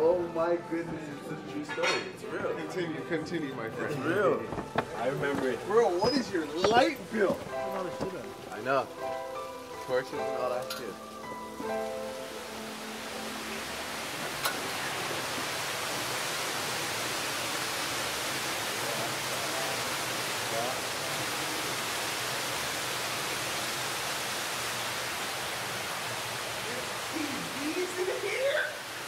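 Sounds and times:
waterfall pouring into pool: 0:04.0 - 0:29.0.

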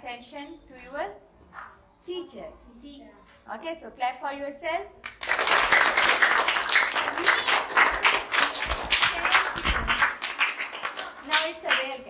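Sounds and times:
children clapping: 0:05.0 - 0:12.0.

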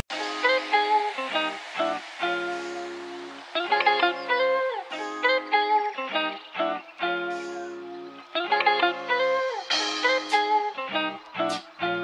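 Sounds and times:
guitar plucking melody: 0:00.1 - 0:12.0.

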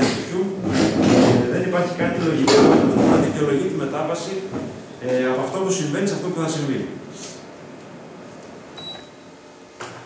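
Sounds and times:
faint high beep: 0:08.8 - 0:09.3.

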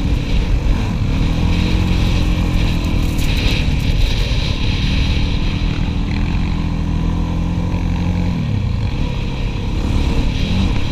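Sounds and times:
quad engine running: 0:00.0 - 0:10.9.

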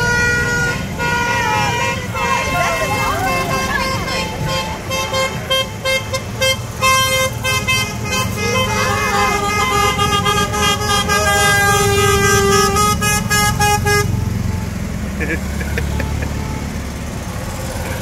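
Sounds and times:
golf cart horns honking: 0:00.0 - 0:18.0
low rumble of passing carts: 0:00.0 - 0:18.0.

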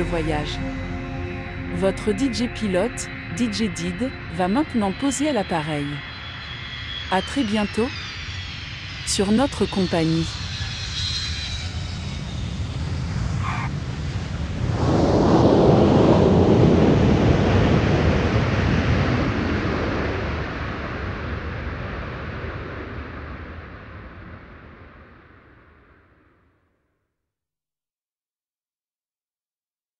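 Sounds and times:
aircraft rushing noise: 0:00.0 - 0:23.0.

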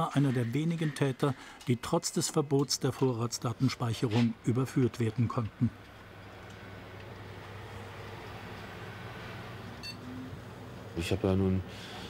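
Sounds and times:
computer equipment humming: 0:00.0 - 0:12.0.

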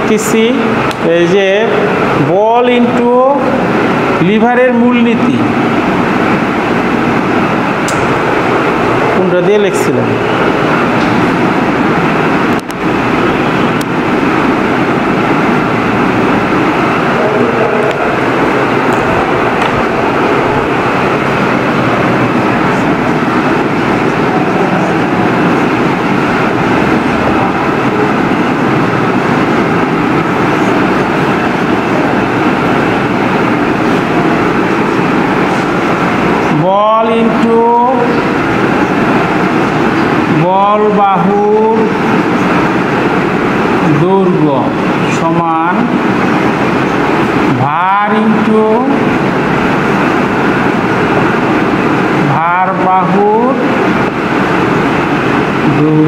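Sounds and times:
loud steady background din: 0:00.0 - 0:56.0.

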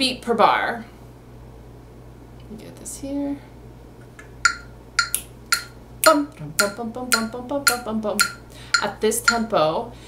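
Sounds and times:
metronome clicking: 0:04.4 - 0:09.5.

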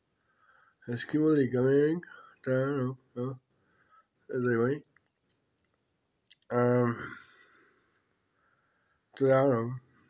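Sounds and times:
man murmuring: 0:06.5 - 0:07.3.

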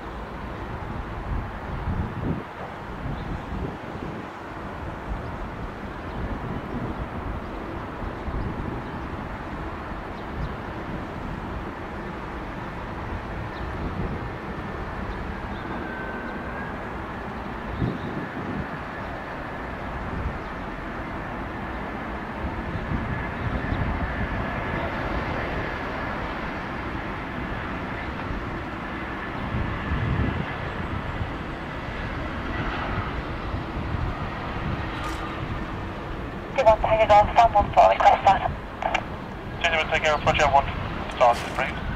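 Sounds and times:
jet engines whine and roar: 0:00.0 - 0:41.9
wind buffeting microphone: 0:00.0 - 0:41.9.

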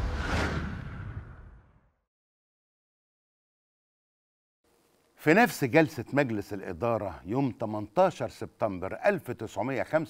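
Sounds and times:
whoosh sound effect: 0:00.0 - 0:01.9.

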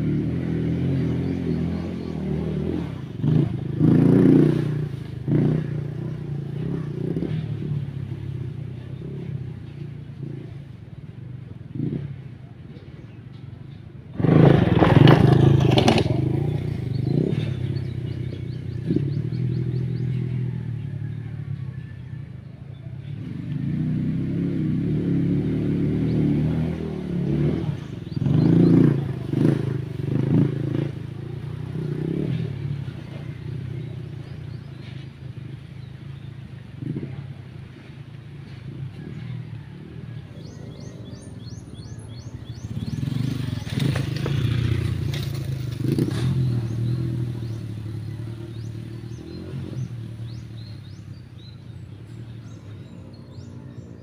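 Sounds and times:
motorcycle engine revving: 0:00.0 - 0:13.4, 0:14.0 - 0:54.0
bird chirping: 0:15.7 - 0:20.5, 0:40.3 - 0:54.0.

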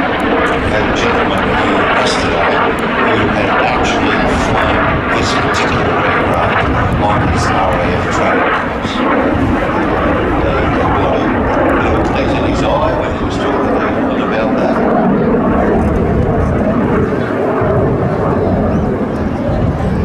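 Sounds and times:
jet engine overhead: 0:00.0 - 0:20.0
voices: 0:00.0 - 0:20.0.

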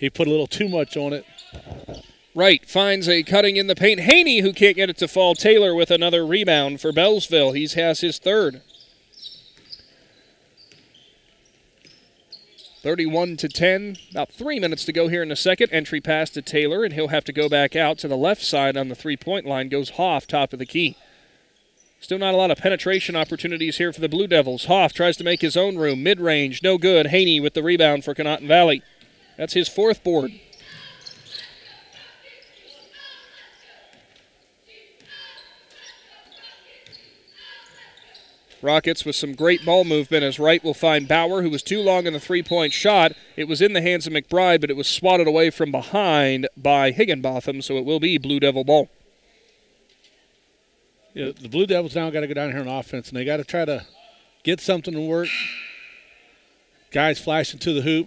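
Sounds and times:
gymnasium ambience: 0:00.0 - 0:58.0
sneaker squeaks on hardwood floor: 0:01.2 - 0:02.2, 0:08.6 - 0:12.9, 0:30.4 - 0:33.3, 0:35.0 - 0:38.6.

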